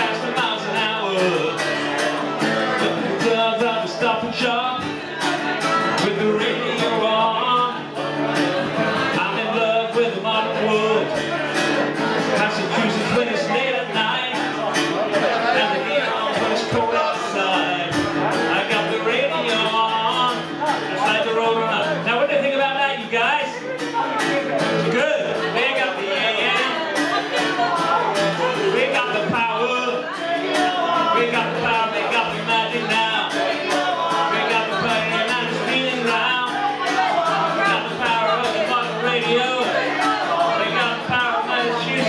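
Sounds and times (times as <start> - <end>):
man singing into microphone: 0.0 - 42.0.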